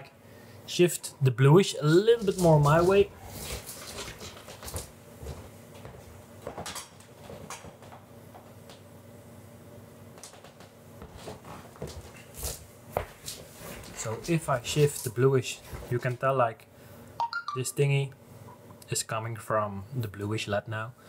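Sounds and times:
faint steady hum: 0:00.0 - 0:21.0
footsteps: 0:02.0 - 0:08.9, 0:10.2 - 0:16.2.

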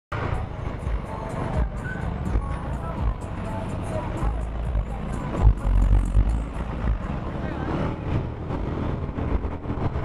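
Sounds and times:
wind rumble on microphone: 0:05.3 - 0:10.0.

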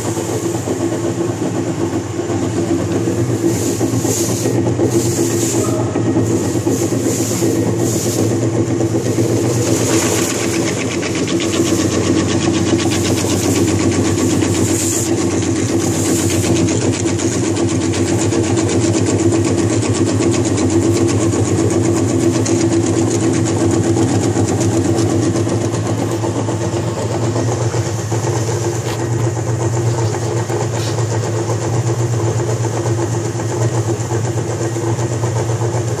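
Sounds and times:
hiss bursts: 0:00.0 - 0:19.5, 0:30.1 - 0:33.1
plastic granulator grinding: 0:00.0 - 0:36.0.

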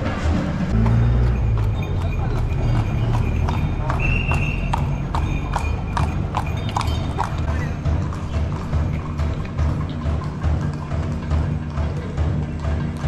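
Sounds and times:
horse hooves on paved road: 0:00.0 - 0:13.0.

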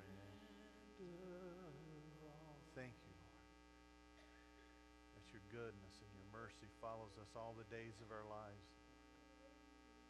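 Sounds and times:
faint voice: 0:00.0 - 0:03.2, 0:05.2 - 0:08.6
low electrical hum: 0:00.0 - 0:10.0.

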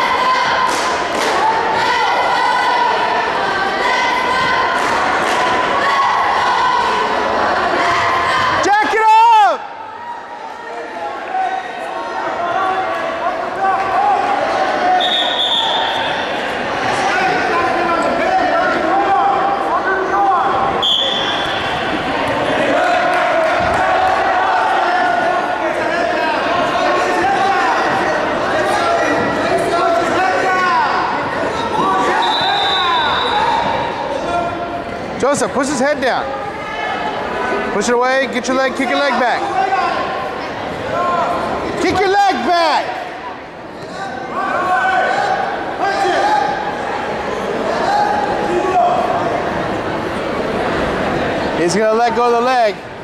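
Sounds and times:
spectators calling out and cheering: 0:00.0 - 0:53.0.

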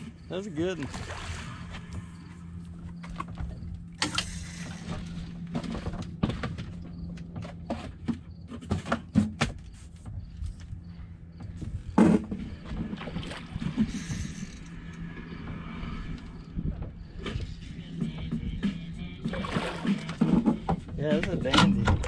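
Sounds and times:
steady low hum: 0:00.0 - 0:08.5.

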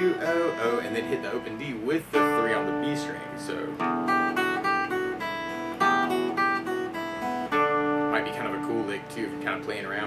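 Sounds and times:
acoustic guitar picking: 0:00.0 - 0:10.0.

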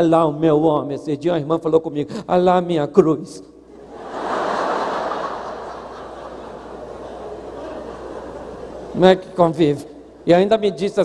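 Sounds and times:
large congregation laughing: 0:03.7 - 0:09.0.

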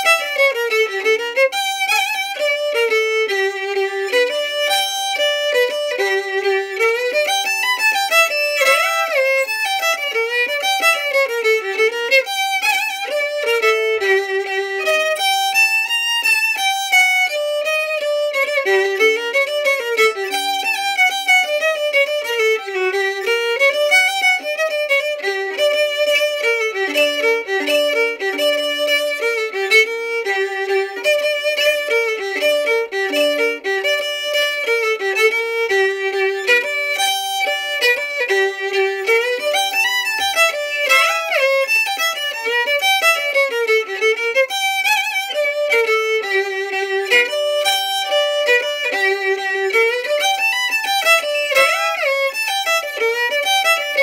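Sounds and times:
solo violin melody: 0:00.0 - 0:54.0.

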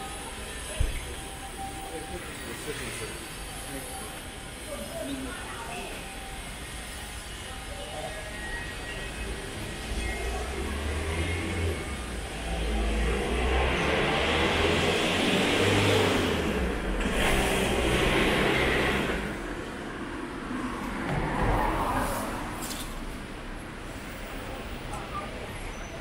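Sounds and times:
car passing by: 0:10.4 - 0:19.4, 0:20.5 - 0:23.2.

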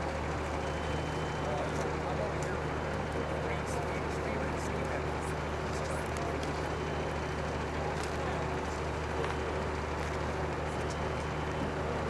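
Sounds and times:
heavy machinery engine droning: 0:00.0 - 0:12.0.

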